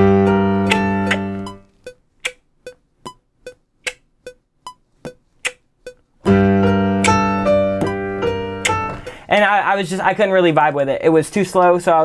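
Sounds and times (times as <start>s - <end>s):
piano playing: 0.0s - 1.7s, 6.2s - 9.2s
metronome clicking: 0.6s - 8.9s.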